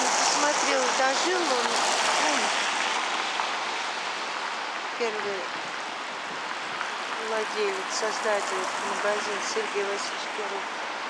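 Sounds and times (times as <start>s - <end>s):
street ambience hiss: 0.0s - 11.0s.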